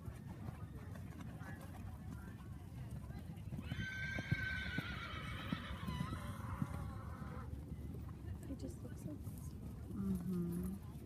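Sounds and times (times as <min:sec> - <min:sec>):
hoofbeats on sand: 0:00.0 - 0:11.0
horse whinnying: 0:03.6 - 0:07.5.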